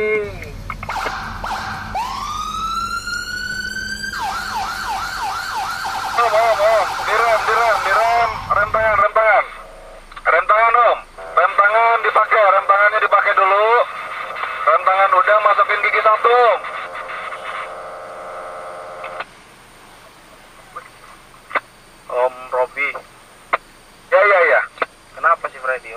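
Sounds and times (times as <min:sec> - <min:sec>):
electronic siren wail and yelp: 0:00.8 - 0:09.6.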